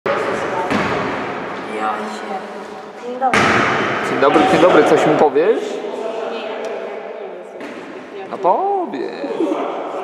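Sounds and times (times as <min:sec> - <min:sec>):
volleyball hitting hard: 0:03.3 - 0:04.1.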